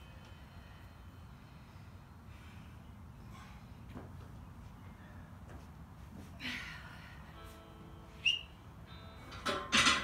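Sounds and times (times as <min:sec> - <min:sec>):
woman gasping breaths: 0:06.3 - 0:07.4
faint background music: 0:06.4 - 0:10.0.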